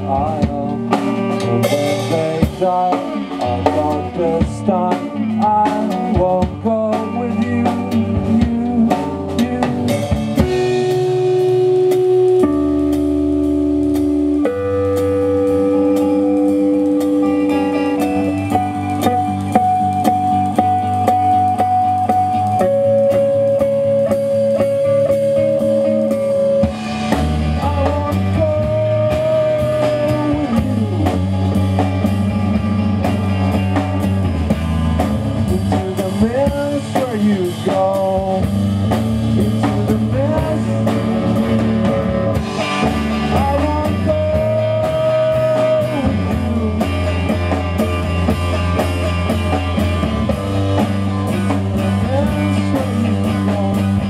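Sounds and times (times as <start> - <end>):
drum kit: 0.0 - 54.0
electric guitars: 0.0 - 54.0.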